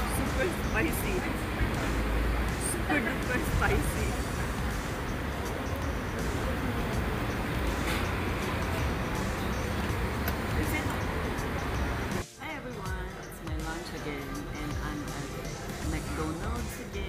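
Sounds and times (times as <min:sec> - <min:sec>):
background music with melody: 0:00.0 - 0:17.0
traffic noise: 0:00.0 - 0:17.0.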